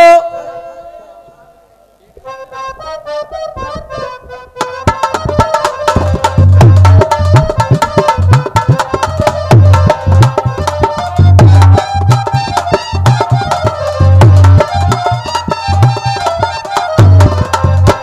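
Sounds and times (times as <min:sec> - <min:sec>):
harmonium melody: 0:02.2 - 0:18.0
hand drums beating: 0:03.8 - 0:18.0.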